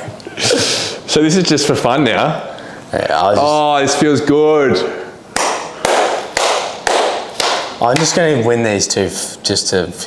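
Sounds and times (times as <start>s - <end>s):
sharp percussive hits: 5.3s - 8.4s.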